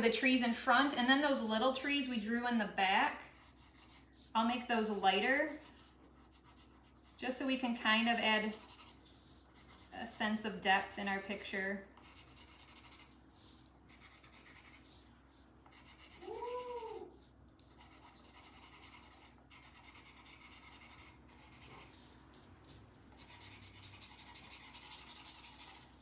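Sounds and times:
pastel scratching on paper: 3.3 - 10.0, 12.0 - 26.0.

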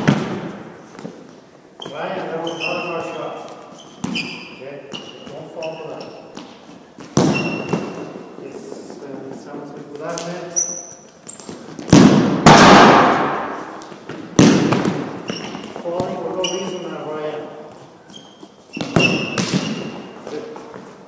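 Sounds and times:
ball bangs on gym floor: 0.0 - 0.5, 7.0 - 8.0, 11.8 - 15.1, 18.8 - 20.0
shoe squeaks: 1.0 - 9.7, 10.3 - 11.8, 15.1 - 21.0.

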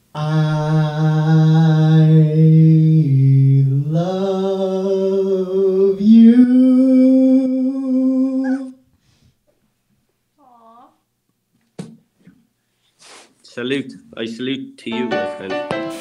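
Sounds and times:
man singing wordless notes: 0.0 - 8.8.

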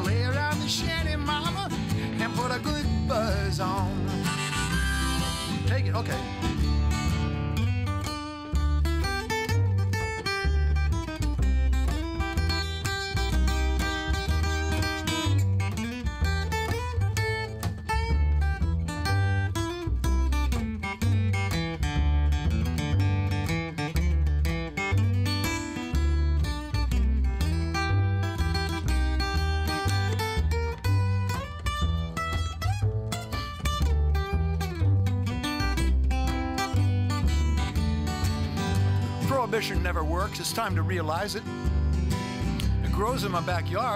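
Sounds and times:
acoustic guitar picking: 0.0 - 43.9
upright bass plucking: 0.0 - 43.9.

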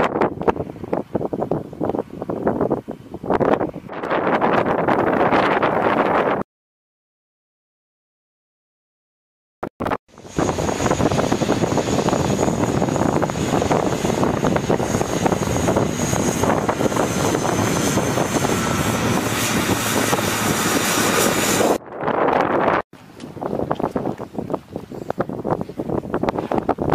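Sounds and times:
low-flying aircraft engine: 0.0 - 6.4, 10.1 - 26.9
wind buffeting microphone: 0.0 - 6.4, 10.1 - 26.9.

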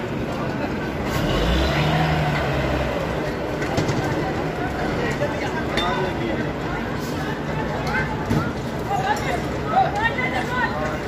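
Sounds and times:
noisy outdoor background: 0.0 - 11.0
people talking and calling: 0.0 - 11.0.

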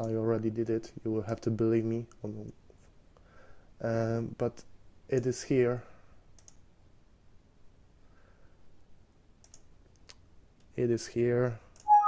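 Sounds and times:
computer mouse clicks: 6.3 - 6.6, 9.4 - 10.7.

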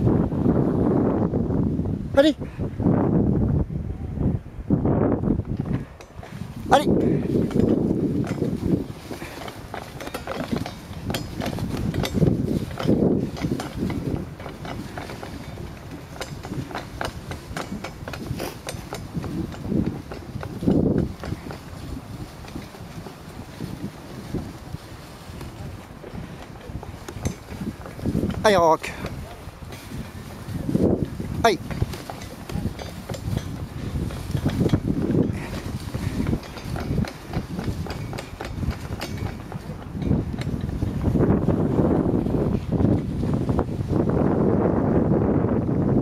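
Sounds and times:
wind on microphone: 0.0 - 46.0
man calling out: 2.1 - 2.5, 6.7 - 7.0, 31.4 - 31.7
sled runners scraping on snow: 5.3 - 45.5.

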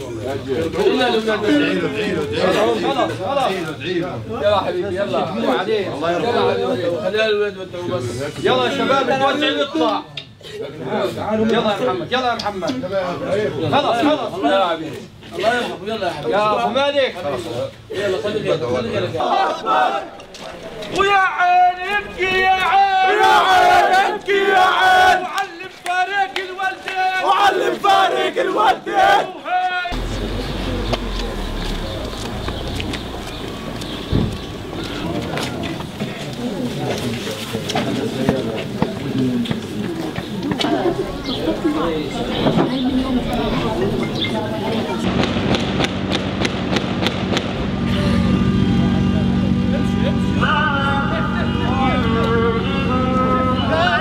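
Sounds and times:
crowd of men chanting: 18.0 - 20.2, 21.8 - 36.1
crowd clapping in unison: 25.3 - 27.2
low hum: 29.9 - 35.0.

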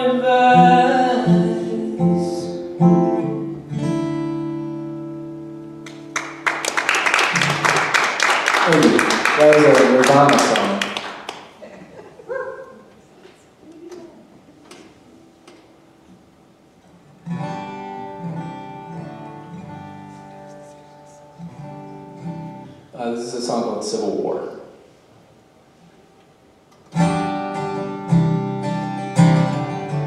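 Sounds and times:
acoustic guitar chords: 0.0 - 11.6, 14.3 - 24.9, 25.9 - 30.0
soft clicks on guitar: 13.2 - 15.8.

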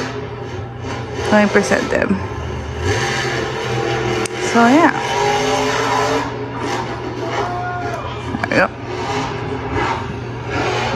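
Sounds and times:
steady low hum: 0.0 - 10.9.

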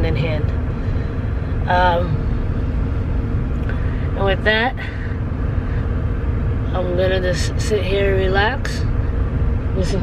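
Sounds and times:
car engine idling: 0.0 - 10.0
faint steady hum: 0.0 - 10.0.

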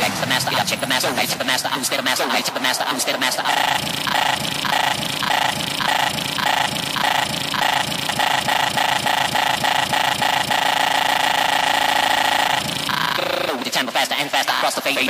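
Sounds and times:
hardcore techno synth chords: 0.0 - 15.0.

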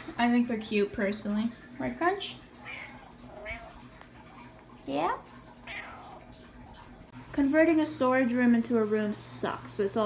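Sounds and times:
cat meowing: 2.6 - 3.8, 5.6 - 6.3.

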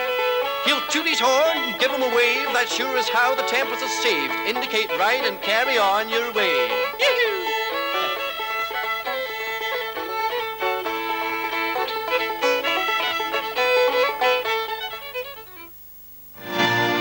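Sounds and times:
country music with fiddle melody: 0.0 - 15.7, 16.4 - 17.0.

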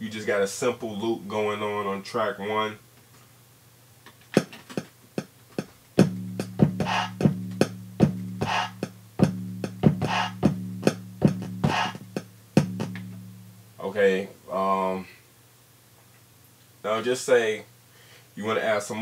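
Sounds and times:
hip-hop drum loop: 4.3 - 13.6
sustained low bass tone: 6.0 - 13.9
vocal chant sample: 6.4 - 10.6, 11.3 - 13.2.

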